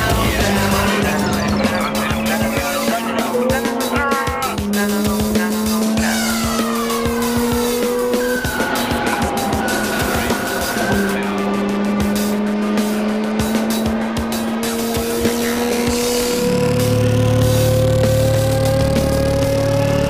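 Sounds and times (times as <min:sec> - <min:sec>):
rotary engine revving high: 0:00.0 - 0:20.0.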